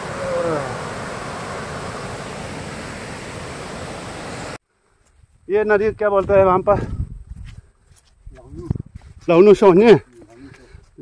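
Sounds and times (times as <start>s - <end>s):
stream rushing over rocks: 0.0s - 4.6s.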